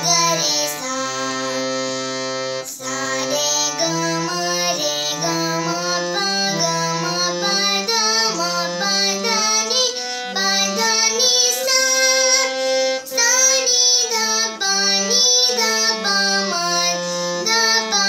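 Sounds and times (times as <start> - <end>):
girl singing: 0.0 - 18.0
harmonium notes: 0.0 - 18.0.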